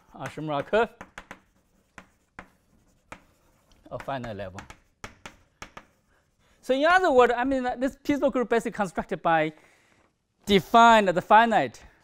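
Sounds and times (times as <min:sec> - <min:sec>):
chalk tapping on blackboard: 0:00.0 - 0:06.4
chalk scratching: 0:00.0 - 0:06.7
man speaking: 0:03.8 - 0:04.7, 0:06.6 - 0:09.6, 0:10.4 - 0:11.9.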